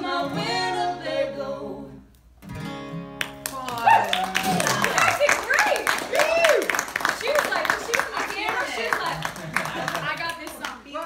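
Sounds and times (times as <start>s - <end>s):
people clapping: 3.2s - 11.0s.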